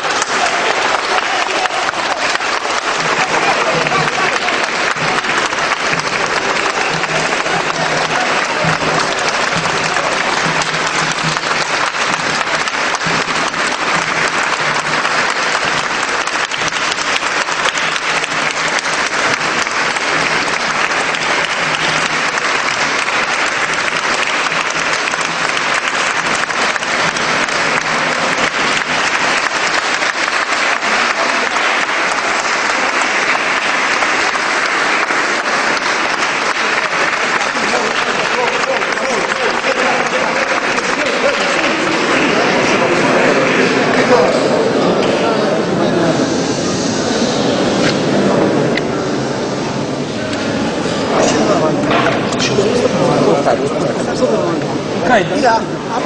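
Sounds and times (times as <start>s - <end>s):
crowd applauding: 0.0s - 56.0s.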